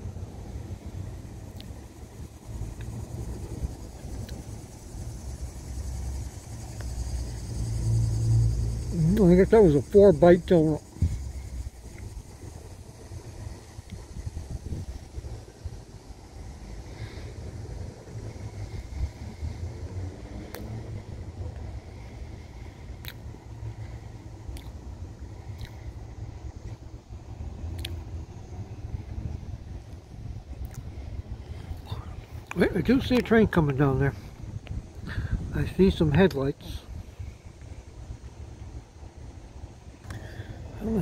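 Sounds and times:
low outdoor rumble: 0.0 - 41.0
faint sharp clicks: 40.0 - 40.2.

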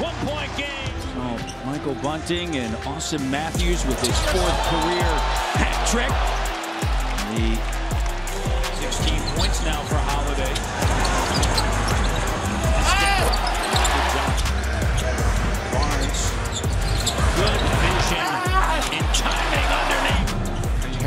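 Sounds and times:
commentator speaking: 0.0 - 6.2, 17.2 - 20.3
background music: 0.0 - 21.0.

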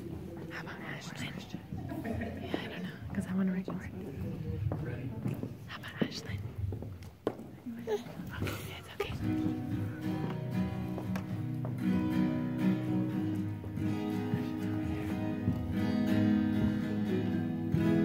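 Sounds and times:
acoustic guitar chords: 8.8 - 18.0.

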